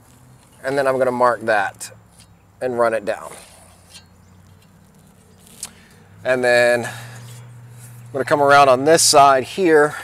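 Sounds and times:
steel square handled against log: 2.1 - 2.4, 3.2 - 5.8.

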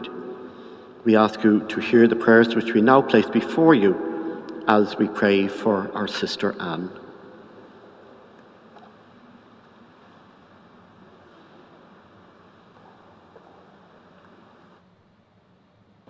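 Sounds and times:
faint room tone hiss: 0.0 - 16.0.

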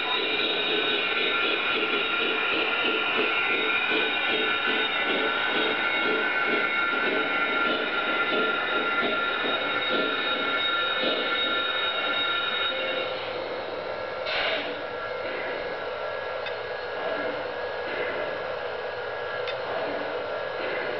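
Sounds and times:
model train whine: 0.0 - 20.9.

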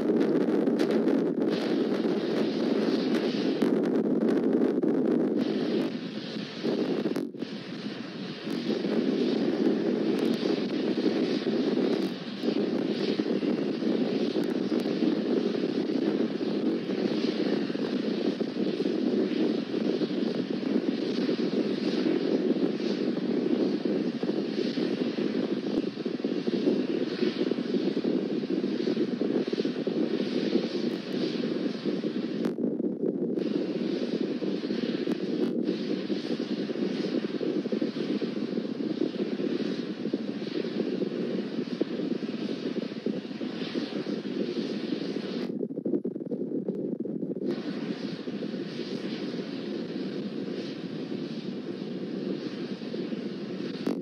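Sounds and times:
rocket engines roaring: 0.0 - 54.0.

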